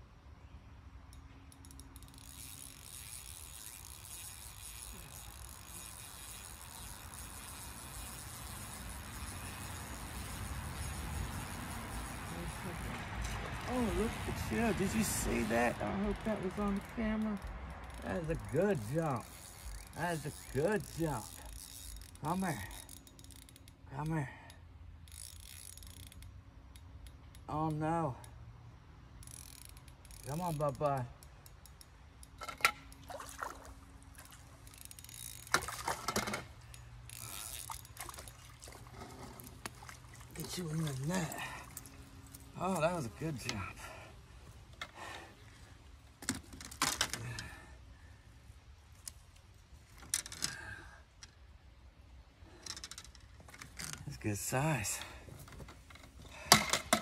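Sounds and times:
fishing reel whirring: 0:01.1 - 0:23.8, 0:25.0 - 0:27.4, 0:29.1 - 0:30.8, 0:32.8 - 0:43.2.

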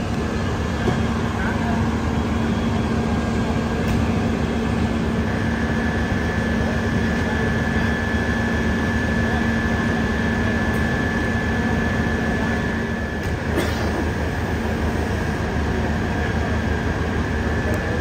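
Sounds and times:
diesel engine low hum: 0:00.0 - 0:18.0
engine whine: 0:00.0 - 0:18.0.

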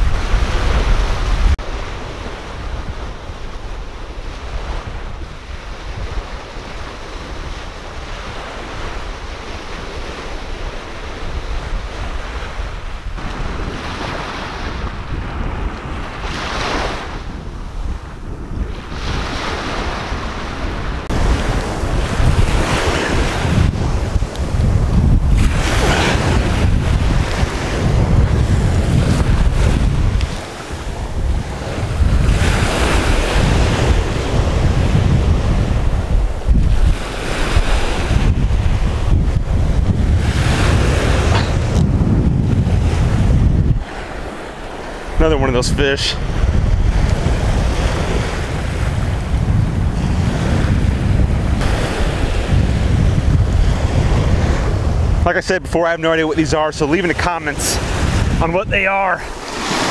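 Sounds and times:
surf breaking on beach: 0:00.0 - 0:59.9
wind buffeting microphone: 0:00.0 - 0:59.9.

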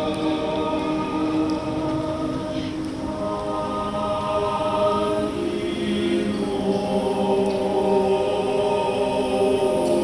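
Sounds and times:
mixed choir singing chords: 0:00.0 - 0:10.0.

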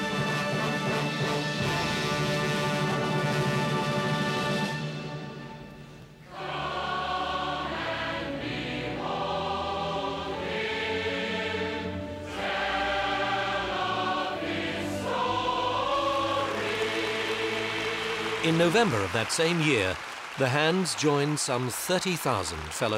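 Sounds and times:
choir singing: 0:06.2 - 0:19.0.

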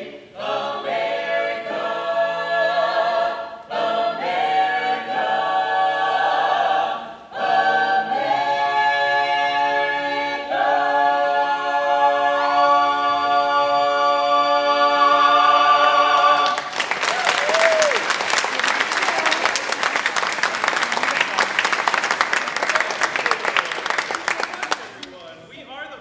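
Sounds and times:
a cappella choir singing: 0:00.0 - 0:16.7.

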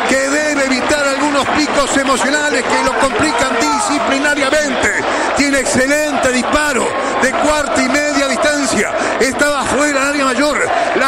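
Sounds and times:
man giving radio commentary: 0:00.0 - 0:11.0.

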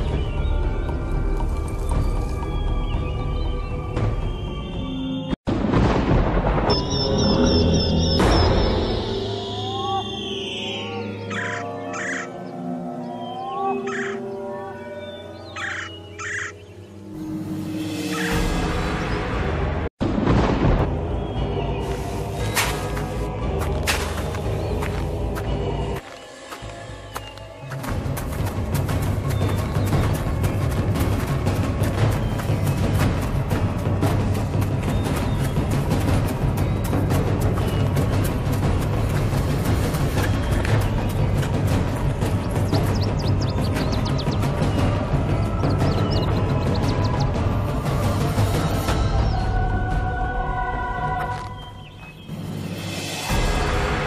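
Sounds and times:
eerie background music: 0:00.0 - 0:54.0
bird calling harshly: 0:11.3 - 0:12.3, 0:15.5 - 0:16.6.

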